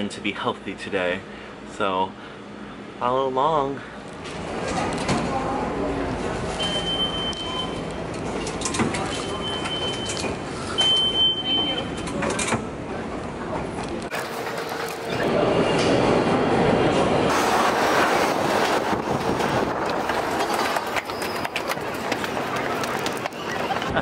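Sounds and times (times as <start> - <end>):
subway train running: 4.2 - 24.0
card reader high beep: 6.6 - 7.9, 9.1 - 10.2, 10.8 - 12.0.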